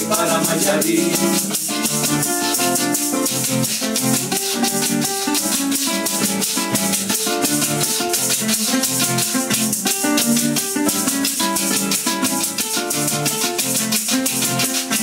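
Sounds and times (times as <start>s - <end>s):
acoustic guitars strumming: 0.0s - 15.0s
maracas shaking: 0.0s - 15.0s.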